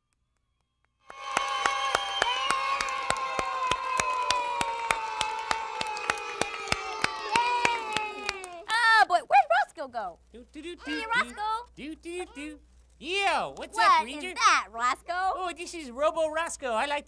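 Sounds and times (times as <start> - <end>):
fast uneven hand claps: 1.1 - 8.8
children cheering: 1.1 - 8.9, 10.8 - 11.4.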